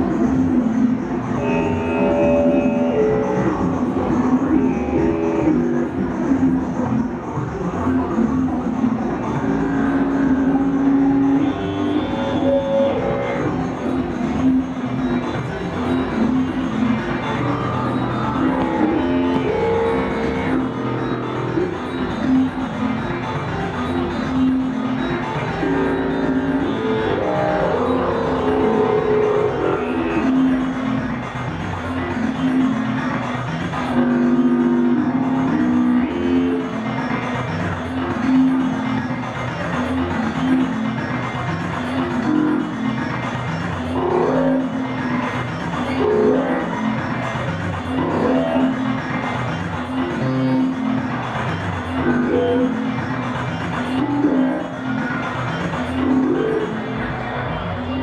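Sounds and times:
dense electronic backdrop: 0:00.0 - 0:58.0
long held synth notes: 0:00.5 - 0:06.1, 0:25.5 - 0:30.8.

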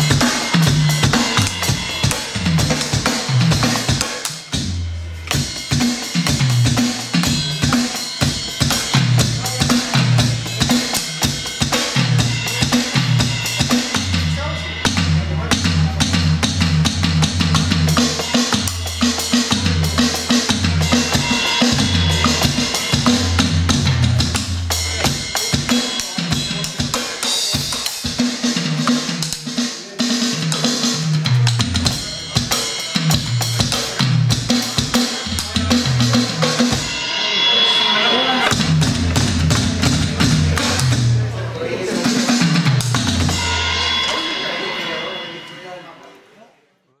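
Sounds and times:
electronic drum kit rock groove: 0:00.0 - 0:46.0.

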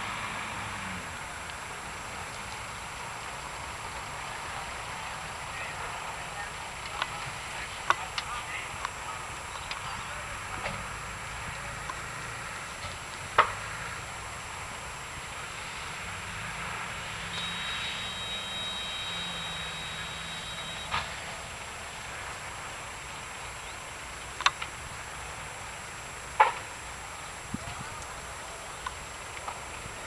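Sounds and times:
fire rushing: 0:00.0 - 0:30.0
thin high whistle: 0:17.3 - 0:21.4.

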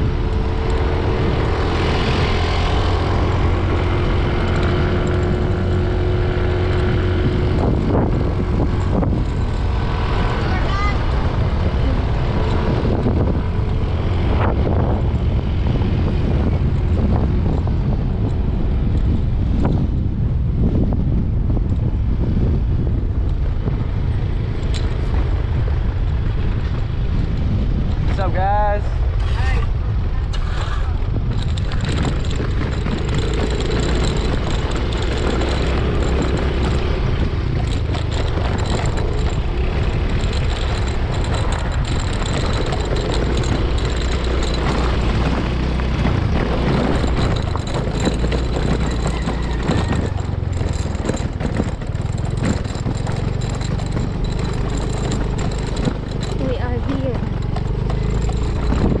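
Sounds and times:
motorcycle engine rumble: 0:00.0 - 0:59.0
wind on microphone: 0:00.0 - 0:59.0.

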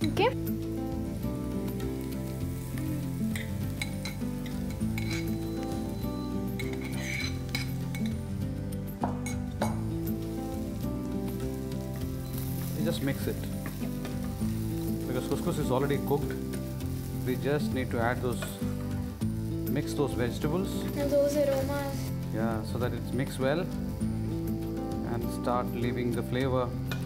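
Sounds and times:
background music: 0:00.0 - 0:27.0
food sizzling in a frying pan: 0:00.0 - 0:27.0.

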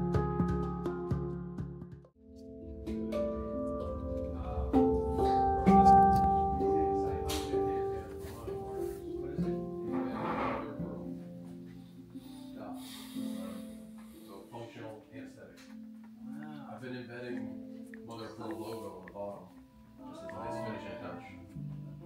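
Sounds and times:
handpan notes ringing: 0:02.3 - 0:11.5.

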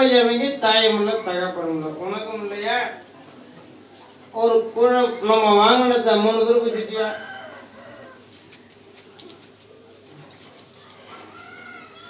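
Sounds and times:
faint distant voices: 0:00.0 - 0:12.0
seated crowd background: 0:00.0 - 0:12.0.

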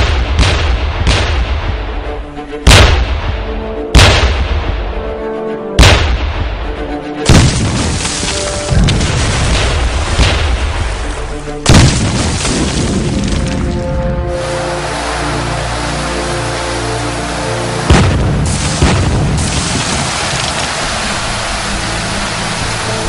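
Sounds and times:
dramatic film music: 0:00.0 - 0:23.0
cannon booms: 0:07.3 - 0:08.1, 0:11.7 - 0:13.1, 0:17.9 - 0:19.9.

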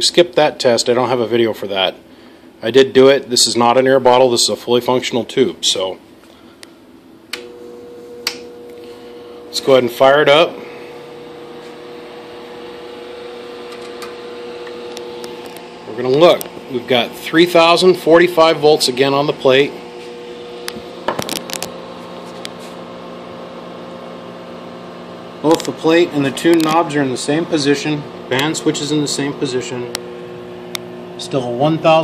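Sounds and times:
amplifier and cooling fan hum: 0:00.0 - 0:32.0.

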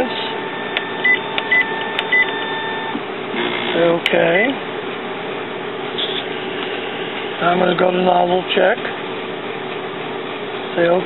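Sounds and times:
printer control panel beeping: 0:00.0 - 0:03.8.

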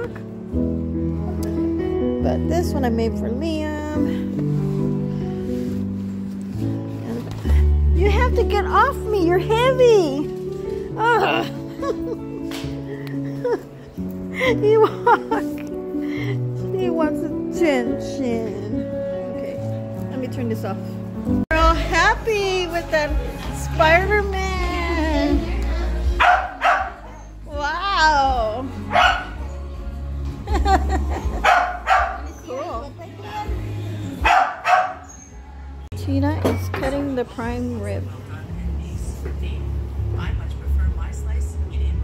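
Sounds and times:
background music: 0:00.0 - 0:42.0
dog whimpering: 0:26.3 - 0:27.5, 0:31.6 - 0:35.5.

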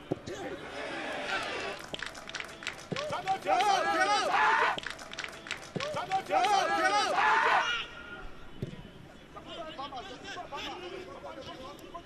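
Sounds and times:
football players shouting: 0:03.0 - 0:04.8, 0:05.8 - 0:08.0.

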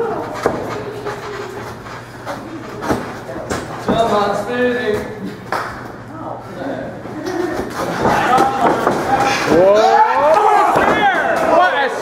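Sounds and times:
low hum in hall: 0:00.0 - 0:12.0
wrestlers slapping and thumping: 0:07.3 - 0:09.5, 0:10.4 - 0:11.6.

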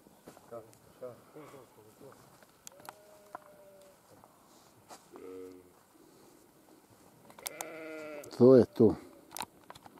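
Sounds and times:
faint clicks: 0:02.5 - 0:03.9, 0:07.2 - 0:08.4
farm animal bleating: 0:02.7 - 0:04.1, 0:05.0 - 0:05.8, 0:07.4 - 0:09.2.

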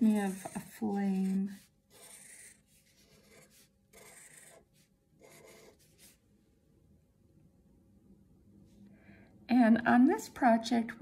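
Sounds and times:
marker scratching on paper: 0:00.0 - 0:06.2.

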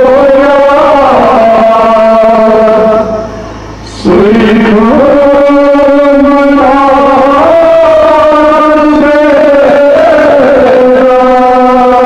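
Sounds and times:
man chanting long sung notes: 0:00.0 - 0:12.0.

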